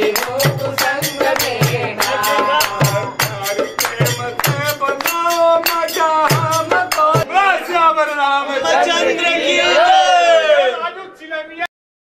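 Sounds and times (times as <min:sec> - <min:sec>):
hand percussion beat: 0:00.0 - 0:07.3
men singing devotional song: 0:00.0 - 0:09.4.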